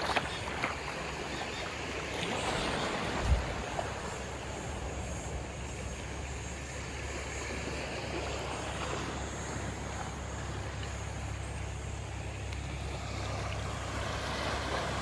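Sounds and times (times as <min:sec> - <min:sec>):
seawater lapping on shore: 0:00.0 - 0:15.0.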